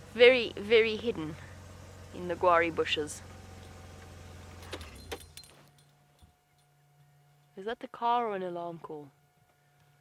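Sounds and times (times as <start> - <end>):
vehicle engine idling: 0.0 - 7.5.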